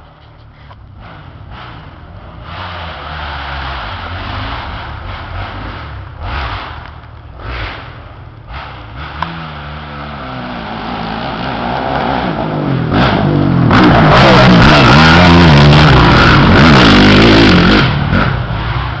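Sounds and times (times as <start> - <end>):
dirt bike engine revving: 1.0 - 19.0.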